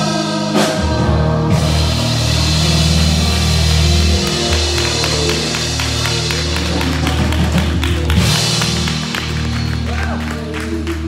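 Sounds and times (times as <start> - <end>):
held bass notes: 0.0 - 11.0
steady tapping beat: 3.2 - 11.0.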